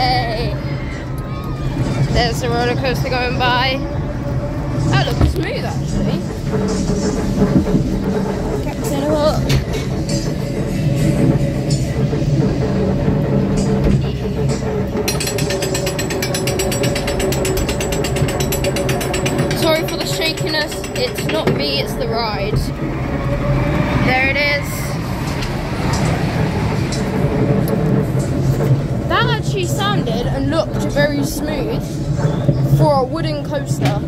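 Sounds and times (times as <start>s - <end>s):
ride mechanism humming: 0.0s - 34.0s.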